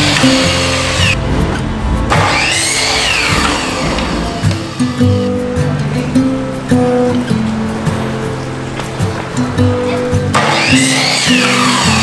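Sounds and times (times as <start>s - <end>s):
miter saw cutting wood: 0.0s - 1.2s, 2.1s - 5.3s, 10.4s - 12.0s
background music: 0.0s - 12.0s.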